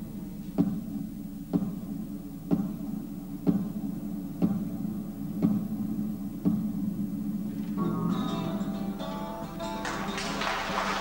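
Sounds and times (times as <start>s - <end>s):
acoustic guitar chords ringing: 7.4s - 10.7s.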